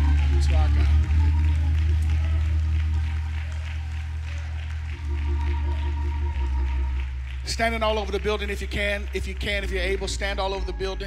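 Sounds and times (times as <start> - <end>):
deep held bass notes: 0.0 - 11.0
sustained keyboard chords: 4.8 - 11.0.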